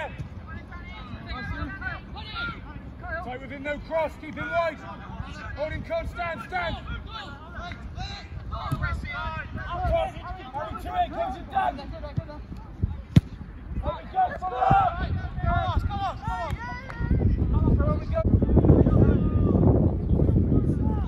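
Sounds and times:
football being kicked: 13.1s - 13.5s.

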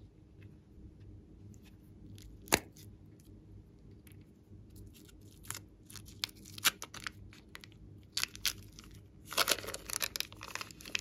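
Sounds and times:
slime crackling and popping: 5.0s - 11.0s.

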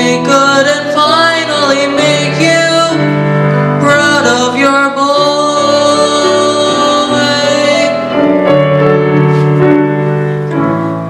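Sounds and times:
young man singing: 0.0s - 8.3s
grand piano accompaniment: 0.0s - 11.0s.

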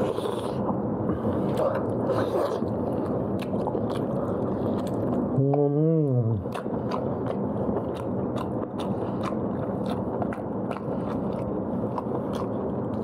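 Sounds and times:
chewing meat: 1.4s - 5.7s, 6.3s - 13.0s.

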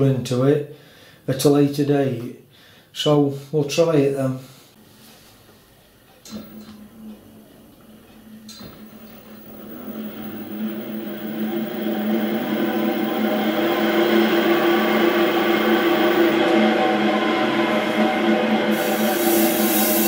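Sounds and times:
click: 6.1s - 7.2s
electric hub motor humming: 6.2s - 20.0s.

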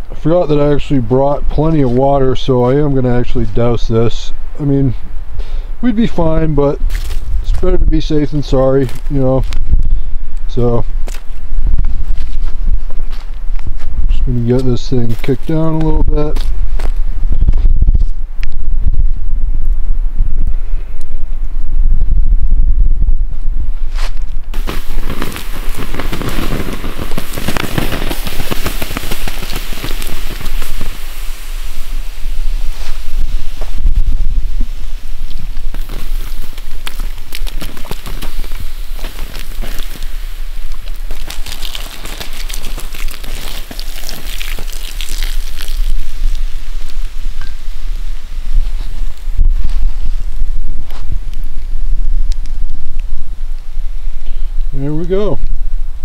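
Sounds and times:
low wind rumble on microphone: 0.0s - 56.0s
scraping and thuds among coals: 6.9s - 7.7s, 23.9s - 47.6s
steam hissing: 24.6s - 50.4s.

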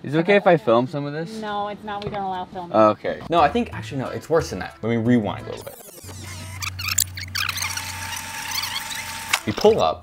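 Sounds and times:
high squeals and chirps: 5.5s - 9.4s.

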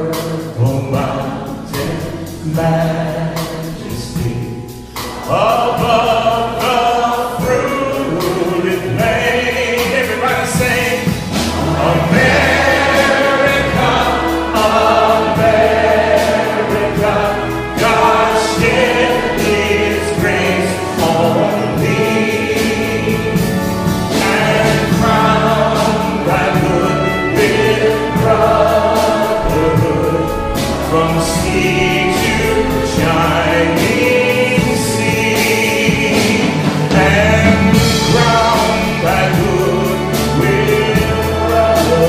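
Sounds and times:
man singing: 0.0s - 42.0s
orchestra with strings playing: 0.0s - 42.0s.

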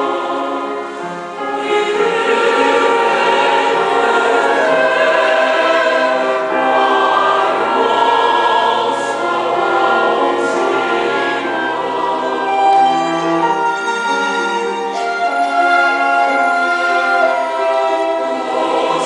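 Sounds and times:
mixed choir singing a hymn: 0.0s - 19.0s.

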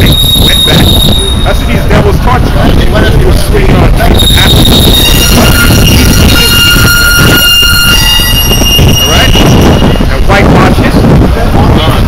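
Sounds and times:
high squeal like brakes: 0.0s - 1.8s, 4.1s - 10.5s
wind rumble on microphone: 0.0s - 12.0s.

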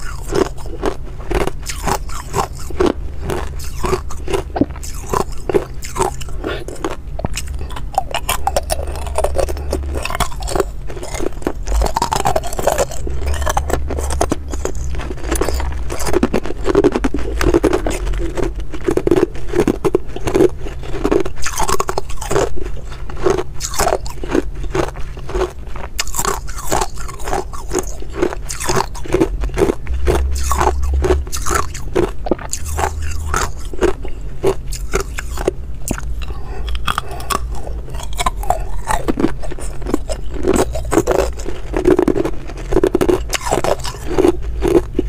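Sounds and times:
ice being chewed: 0.0s - 45.0s.

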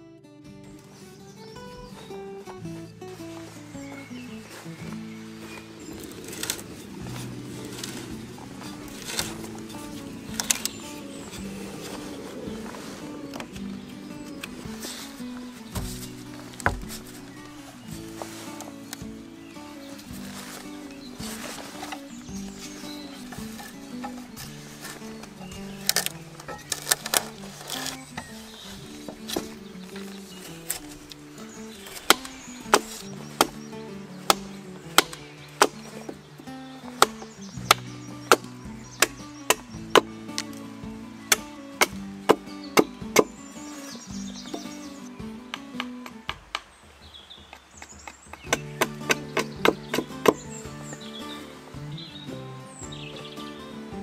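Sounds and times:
background music: 0.0s - 54.0s
hatchet chopping wood: 5.9s - 12.5s, 15.7s - 17.5s, 21.2s - 28.4s, 29.0s - 36.2s, 36.8s - 40.6s, 41.3s - 51.0s.

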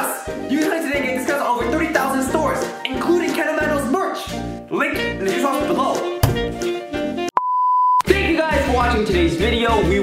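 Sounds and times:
background music with a beat: 0.0s - 7.3s, 8.0s - 10.0s
electronic beep: 7.4s - 8.0s.

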